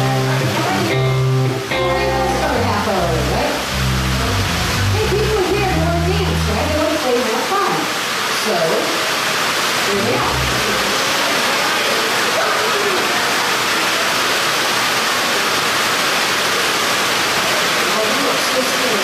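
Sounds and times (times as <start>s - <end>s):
heavy rain pouring: 0.0s - 19.0s.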